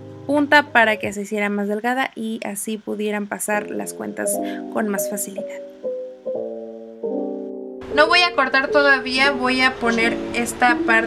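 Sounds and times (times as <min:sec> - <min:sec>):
soft piano chords: 0:00.0 - 0:01.7, 0:03.5 - 0:11.0.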